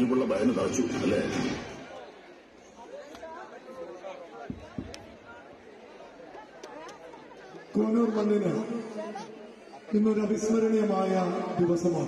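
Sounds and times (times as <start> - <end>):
background chatter of people talking: 0.0 - 12.0.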